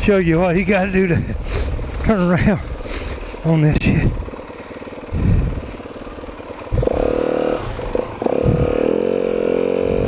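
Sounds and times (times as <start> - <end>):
dirt bike engine revving: 1.4 - 10.0.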